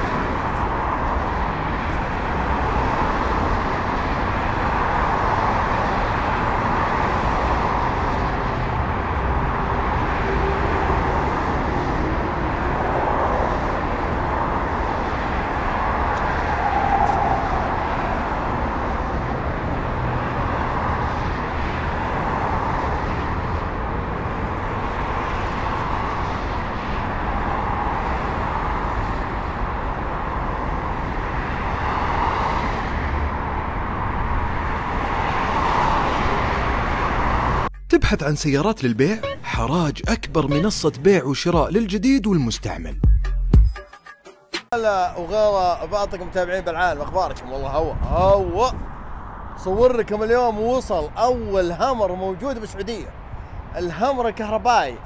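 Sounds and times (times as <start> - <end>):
road traffic rumble: 0.0 - 42.9, 44.7 - 55.0.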